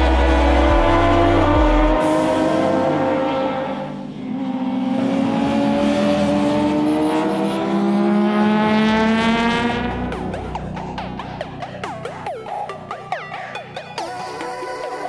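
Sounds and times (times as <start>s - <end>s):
racing motorcycle engine revving: 0.0s - 12.1s
motorcycle passing by: 0.1s - 10.1s.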